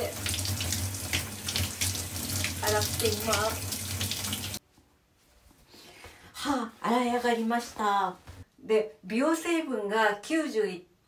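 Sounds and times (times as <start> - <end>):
shower head spraying water: 0.0 - 4.6
water splashing: 0.0 - 4.6.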